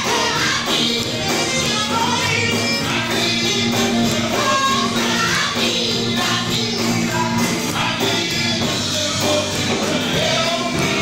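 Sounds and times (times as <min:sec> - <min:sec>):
band playing steady beat: 0:00.0 - 0:11.0
voices singing in harmony: 0:00.0 - 0:11.0.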